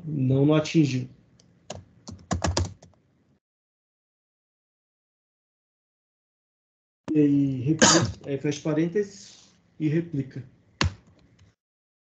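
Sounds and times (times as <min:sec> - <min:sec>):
typing on computer keyboard: 0:01.7 - 0:03.0.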